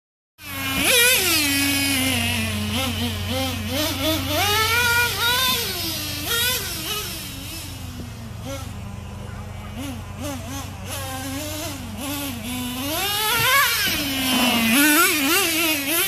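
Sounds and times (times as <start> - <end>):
rc truck engine revving: 0.4 - 16.0.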